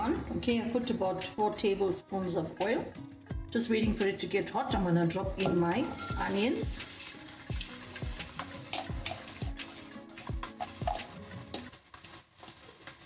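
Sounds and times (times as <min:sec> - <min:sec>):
background music with beat: 0:02.1 - 0:04.1, 0:04.7 - 0:11.9
onions sizzling in hot oil: 0:05.9 - 0:13.0.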